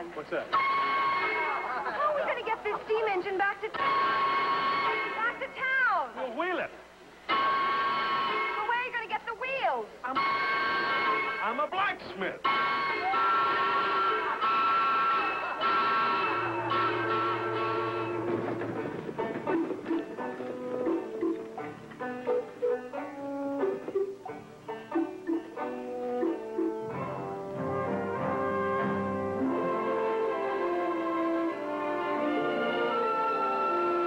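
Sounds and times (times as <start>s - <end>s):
orchestral music with brass: 0.5s - 1.7s, 7.3s - 8.7s, 12.4s - 34.0s.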